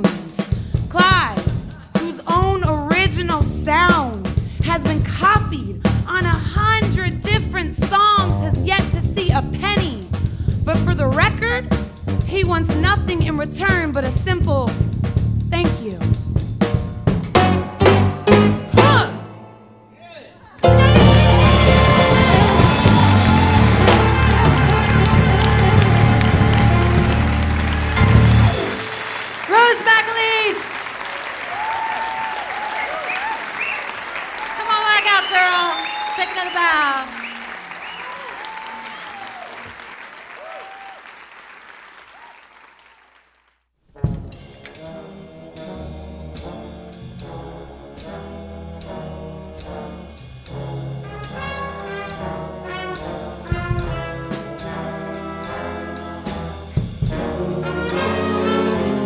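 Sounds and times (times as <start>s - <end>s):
brass band playing: 2.9s - 19.7s, 20.6s - 30.6s, 44.0s - 59.0s
music with heavy bass beat: 20.6s - 28.7s
audience applauding and cheering: 20.6s - 43.6s.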